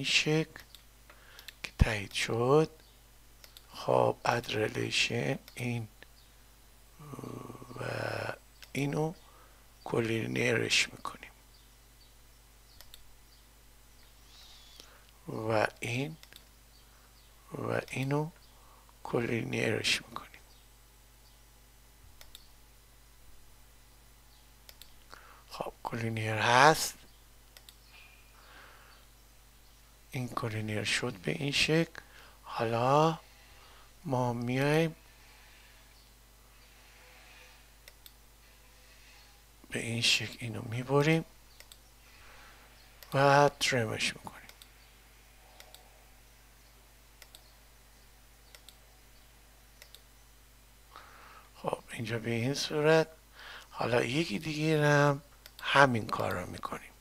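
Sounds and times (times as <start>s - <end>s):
faint room hum: 0.0s - 57.0s
computer mouse clicking: 3.4s - 3.7s, 12.7s - 13.1s, 22.2s - 22.5s, 24.6s - 25.1s, 27.5s - 27.9s, 37.8s - 38.2s, 41.5s - 41.9s, 44.5s - 44.8s, 45.5s - 45.9s, 46.6s - 47.5s, 48.4s - 48.8s, 49.8s - 50.1s.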